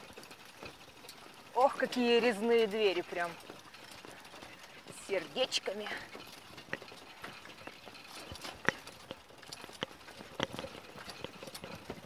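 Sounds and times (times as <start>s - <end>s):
pedal cart rolling on pavement: 0.0s - 12.0s.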